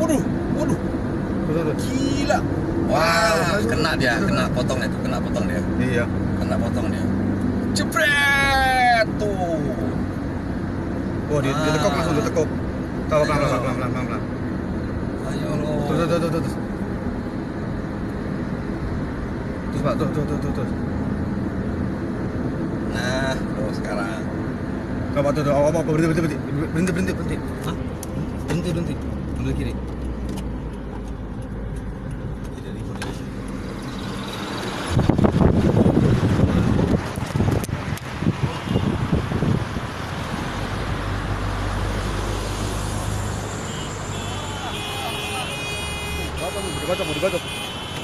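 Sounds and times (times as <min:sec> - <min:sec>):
vehicle cruising on highway: 0:00.0 - 0:48.0
wind on microphone: 0:34.8 - 0:40.5.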